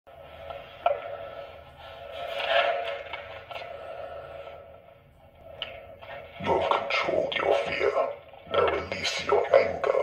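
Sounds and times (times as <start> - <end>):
filtered breath noise: 0.1 - 6.4.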